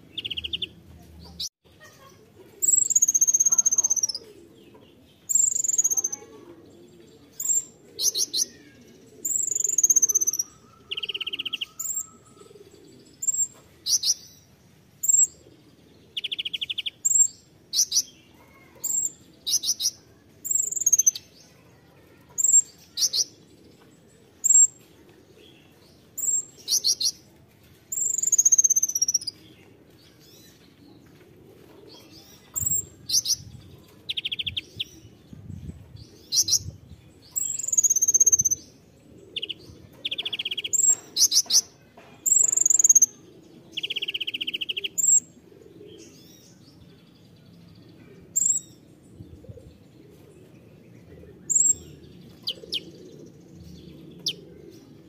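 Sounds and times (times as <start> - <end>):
buzzy bird trills: 5.3 - 6.3.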